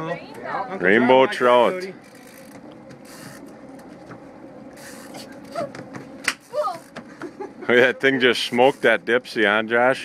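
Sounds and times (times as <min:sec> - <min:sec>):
fishing reel gear clicks: 0:02.0 - 0:03.5.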